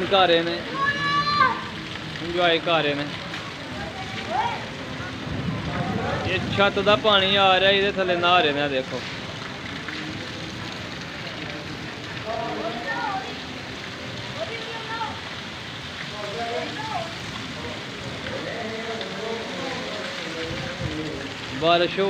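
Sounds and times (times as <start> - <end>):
faint voices: 0.0 - 22.0
steady rain falling: 0.0 - 22.0.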